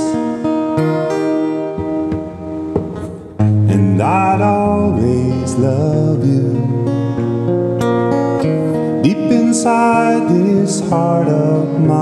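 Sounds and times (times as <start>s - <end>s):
fingerstyle acoustic guitar: 0.0s - 12.0s.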